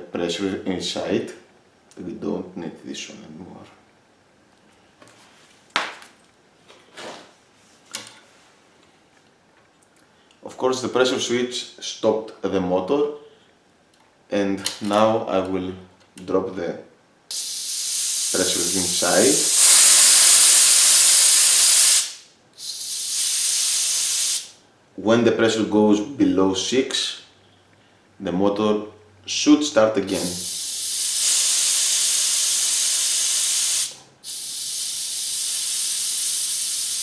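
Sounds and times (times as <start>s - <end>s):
compressed air hissing from valve: 17.3s - 24.6s, 30.1s - 37.0s.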